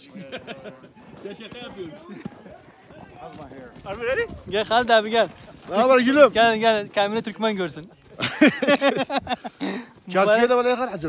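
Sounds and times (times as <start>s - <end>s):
quiet voices talking: 0.0s - 8.5s.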